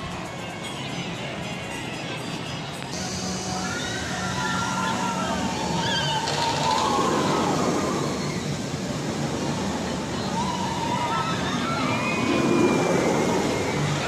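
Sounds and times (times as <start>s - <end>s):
riders screaming and shouting: 0.0s - 14.0s
roller coaster rushing rumble: 0.0s - 14.0s.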